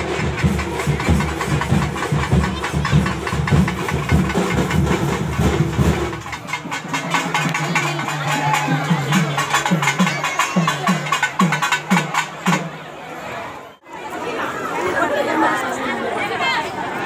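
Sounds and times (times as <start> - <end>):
deep drum strokes: 0.0 - 12.6
rapid festival drumming: 0.0 - 13.0.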